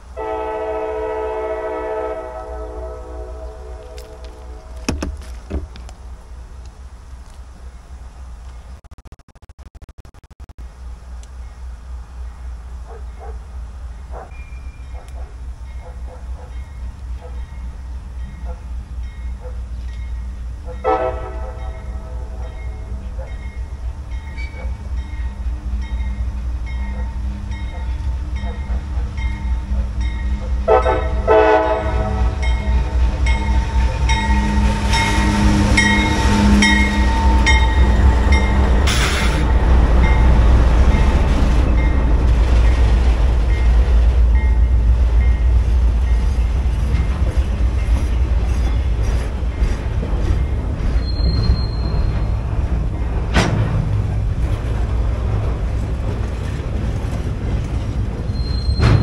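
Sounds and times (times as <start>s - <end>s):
locomotive horn: 0.0s - 4.9s, 20.7s - 23.0s, 30.5s - 40.2s
diesel locomotive rumble: 0.0s - 8.8s, 10.6s - 59.0s.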